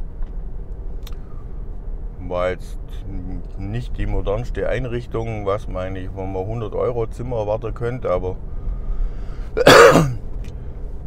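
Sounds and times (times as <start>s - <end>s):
car driving hum: 0.0s - 11.0s
man clearing throat: 9.6s - 10.2s.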